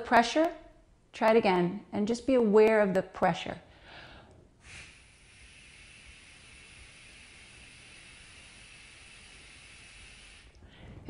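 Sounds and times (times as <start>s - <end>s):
person exhaling through fist: 4.6s - 11.0s.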